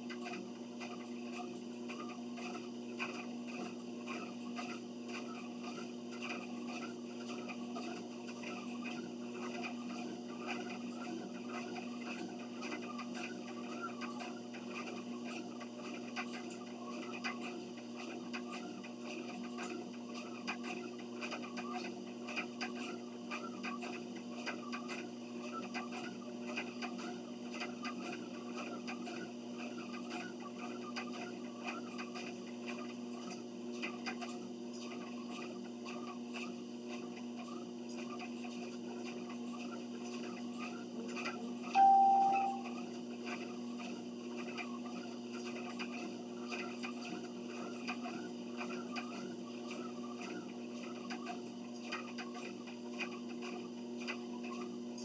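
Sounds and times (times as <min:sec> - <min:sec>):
footsteps on treadmill belt: 0:00.0 - 0:41.6, 0:43.3 - 0:55.0
treadmill motor hum: 0:00.0 - 0:55.0
short console beep: 0:41.8 - 0:42.7.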